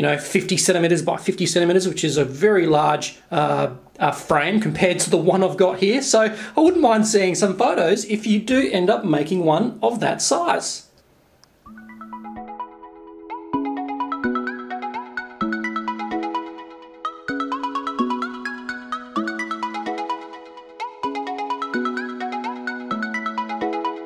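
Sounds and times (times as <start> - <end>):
electronic music: 11.7 - 24.0.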